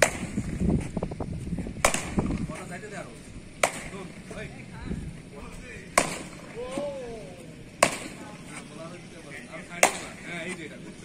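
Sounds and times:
cricket bat striking ball: 0:00.0 - 0:00.4, 0:01.8 - 0:02.4, 0:03.6 - 0:04.1, 0:05.9 - 0:06.9, 0:07.8 - 0:08.3, 0:09.8 - 0:10.2.

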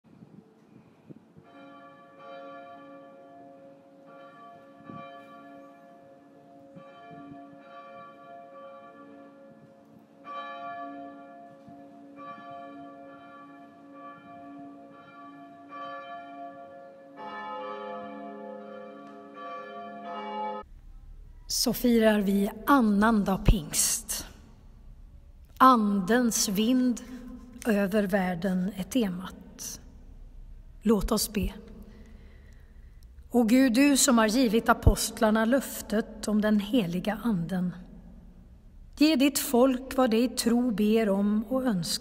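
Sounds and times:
church bells ringing: 0:01.4 - 0:42.0.

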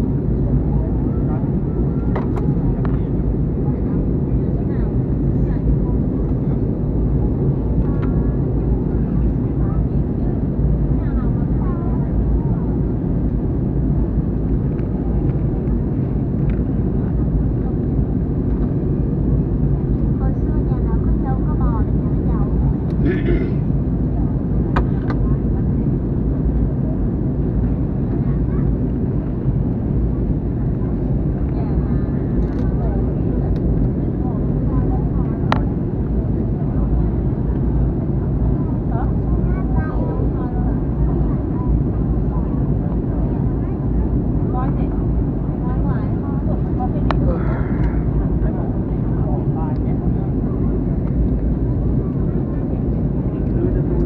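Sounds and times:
airplane cabin rumble: 0:00.0 - 0:54.0.

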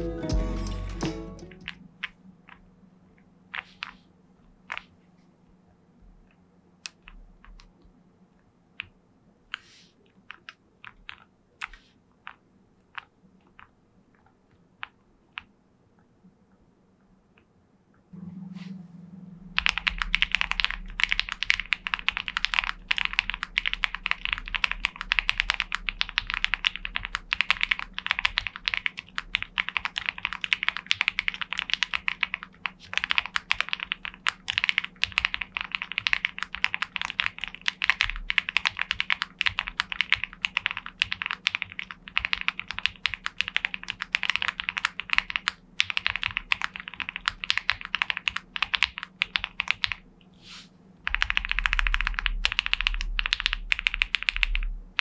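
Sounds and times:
fast typing on mechanical keyboard: 0:04.6 - 0:04.9, 0:10.2 - 0:15.5, 0:19.6 - 0:50.0, 0:51.0 - 0:55.0.

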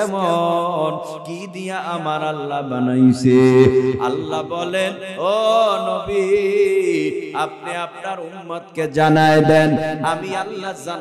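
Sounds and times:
man chanting through loudspeakers: 0:00.0 - 0:11.0.

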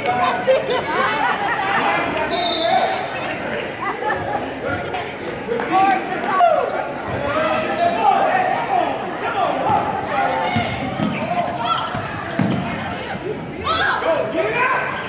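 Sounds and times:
people shouting in echoing gym: 0:05.7 - 0:15.0.

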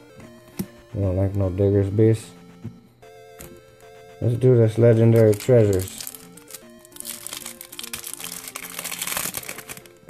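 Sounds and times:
quiet background music: 0:00.0 - 0:10.0
foil wrapper crinkling and tearing: 0:05.1 - 0:10.0.

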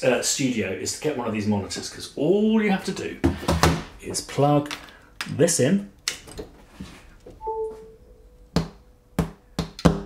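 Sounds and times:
short electronic chime: 0:07.4 - 0:08.3.

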